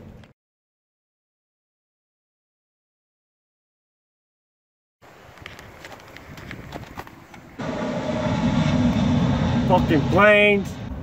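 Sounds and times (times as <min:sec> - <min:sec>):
airplane flying over: 0:07.5 - 0:11.0.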